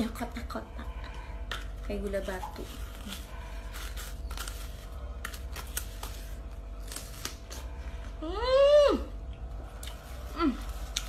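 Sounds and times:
crunching of fruit being chewed: 1.4s - 8.2s, 9.2s - 11.0s.

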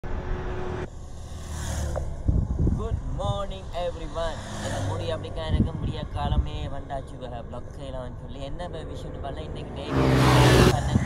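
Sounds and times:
vehicle low rumble: 0.0s - 11.0s.

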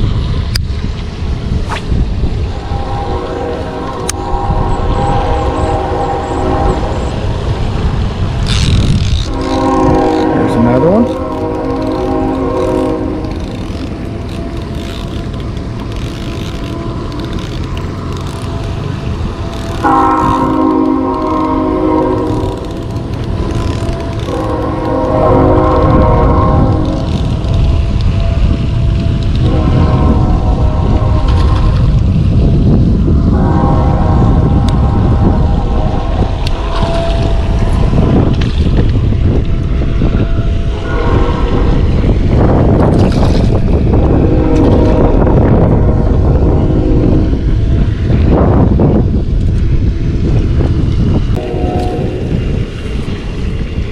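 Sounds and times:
wind buffeting microphone: 0.0s - 53.9s
train horn chord blasts: 2.6s - 7.5s, 9.3s - 13.7s, 18.4s - 31.9s, 33.1s - 38.4s, 39.1s - 41.8s, 44.1s - 47.8s, 51.4s - 52.5s.

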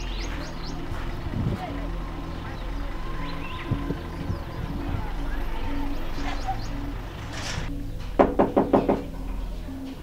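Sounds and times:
background music: 0.0s - 10.0s
knocking on a door: 8.2s - 9.1s.

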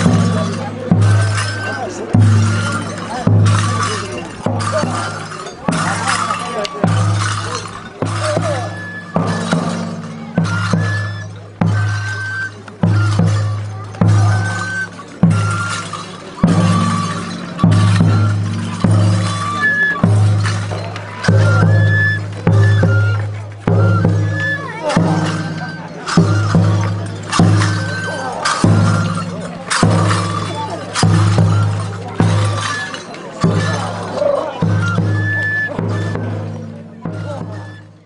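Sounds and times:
deep drum beat: 0.0s - 12.2s, 12.8s - 32.7s
festival music: 0.0s - 38.0s.

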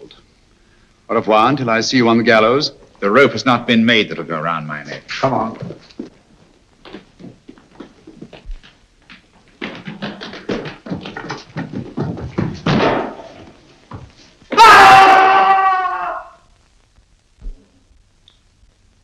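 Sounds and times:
footsteps on stone: 5.4s - 14.5s
man screaming: 14.5s - 16.4s.

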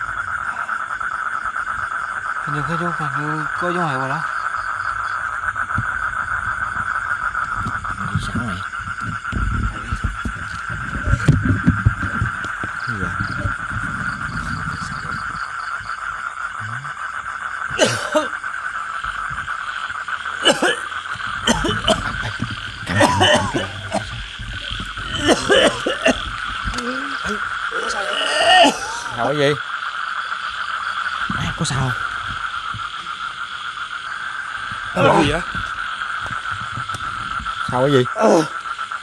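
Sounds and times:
frogs trilling: 0.0s - 39.0s
low rumbling noise: 5.0s - 29.4s
person mumbling words: 16.6s - 16.9s, 22.9s - 25.8s, 26.8s - 29.2s, 35.0s - 35.5s.

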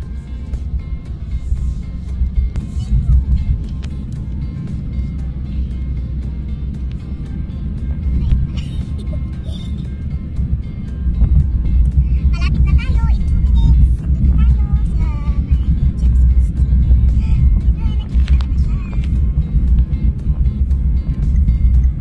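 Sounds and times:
car road and engine rumble: 0.0s - 22.0s
music playing: 0.0s - 22.0s.

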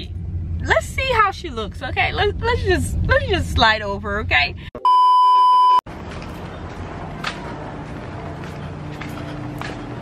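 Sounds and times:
high test-tone beep: 4.8s - 5.8s
outdoor background noise: 5.9s - 10.0s.

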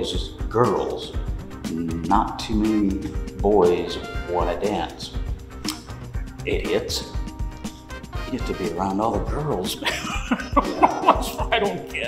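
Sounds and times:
man laughing: 9.8s - 12.0s.

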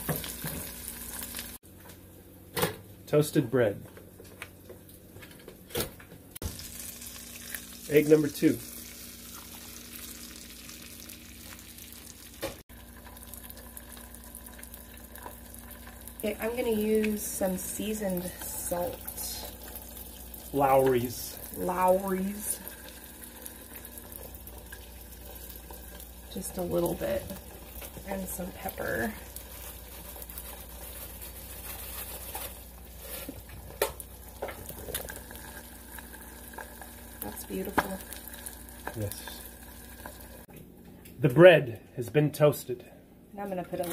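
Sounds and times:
egg sizzling in a pan: 0.0s - 2.3s, 6.4s - 40.5s.

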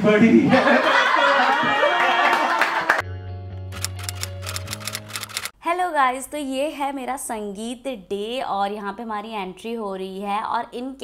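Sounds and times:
sharp typewriter-like clicks: 3.8s - 5.5s.

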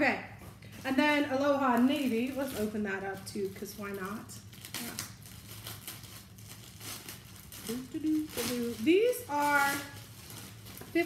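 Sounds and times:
woman's voice: 0.0s - 4.4s, 7.7s - 10.0s
plastic bag crinkling: 0.5s - 11.0s.

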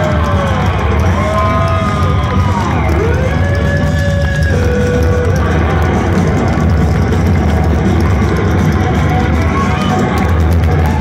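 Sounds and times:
bending guitar lead notes: 0.8s - 10.2s.

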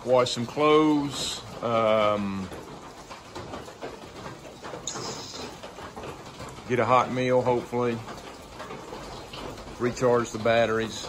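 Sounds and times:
irregular water drips: 0.0s - 11.0s
rain hissing: 0.0s - 11.0s.

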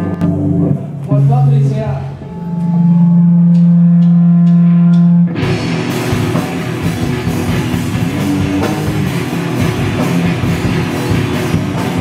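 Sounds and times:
distorted electric guitar note: 0.0s - 12.0s
punk band playing: 0.0s - 12.0s
drum stick ticks: 3.5s - 5.1s.

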